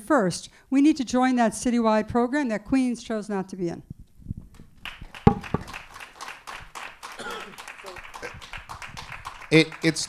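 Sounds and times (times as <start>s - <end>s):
audience clapping: 4.8s - 10.0s
microphone thumping on table: 5.3s - 5.7s.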